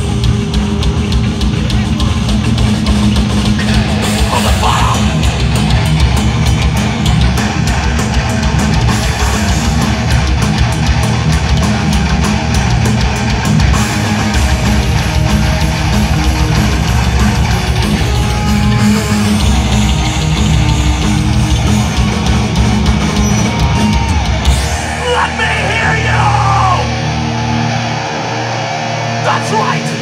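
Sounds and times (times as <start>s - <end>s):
fast drumming with cymbals: 0.0s - 26.5s
bass guitar: 0.0s - 30.0s
distorted electric guitars: 0.0s - 30.0s.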